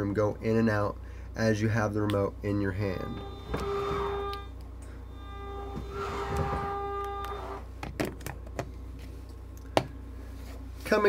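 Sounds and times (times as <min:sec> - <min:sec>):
electric motor whine: 0:02.8 - 0:07.7.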